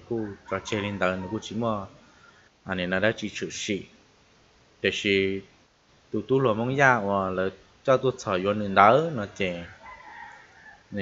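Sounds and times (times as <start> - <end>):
man speaking: 0.0 - 2.0, 2.7 - 3.9, 4.8 - 5.5, 6.2 - 9.8
faint animal call: 0.0 - 2.5, 8.8 - 11.0.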